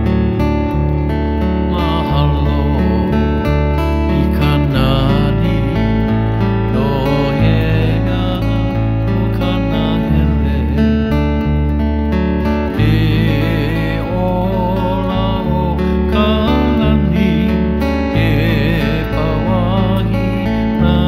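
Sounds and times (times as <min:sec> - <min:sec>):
acoustic guitar melody: 0:00.0 - 0:21.0
electric bass deep notes: 0:00.0 - 0:21.0.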